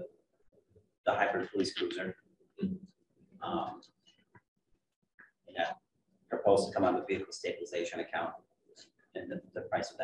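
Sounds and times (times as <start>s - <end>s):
man speaking: 1.1s - 2.8s, 3.4s - 3.8s, 5.5s - 8.4s, 9.2s - 10.0s.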